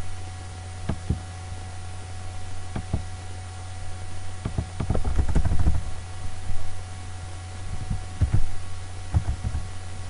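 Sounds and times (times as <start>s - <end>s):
low electrical hum: 0.0s - 10.0s
laptop keyboard typing: 4.5s - 5.8s, 7.8s - 8.4s, 9.1s - 9.6s.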